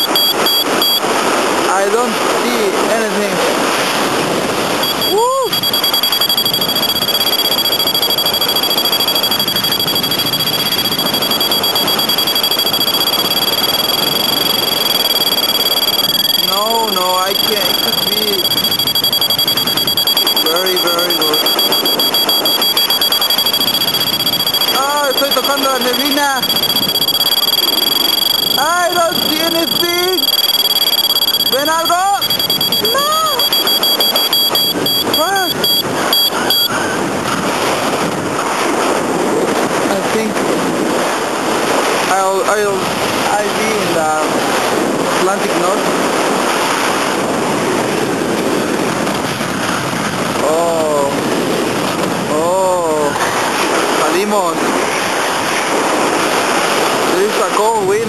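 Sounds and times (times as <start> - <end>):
thin steady high tone: 0.0 - 1.1, 4.8 - 37.0
wind rushing over microphone: 0.0 - 58.0.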